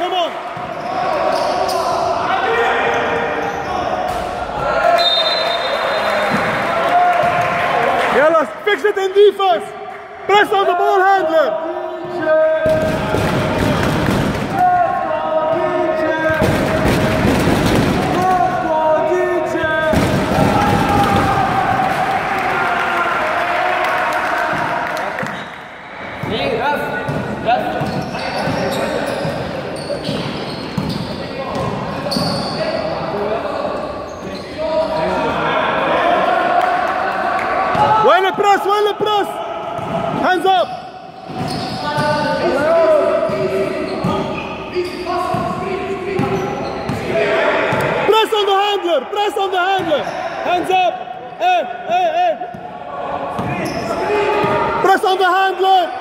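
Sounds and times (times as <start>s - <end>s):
voices echoing in gym: 0.0s - 56.0s
sneakers squeaking on court: 0.5s - 2.0s, 27.0s - 32.8s, 40.6s - 42.5s, 43.2s - 47.1s, 53.3s - 54.6s
basketball bouncing on court: 27.0s - 32.2s.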